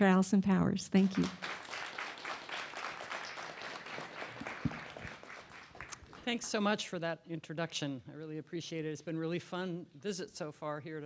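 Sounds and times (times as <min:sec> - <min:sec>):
audience applauding: 0:01.1 - 0:06.7.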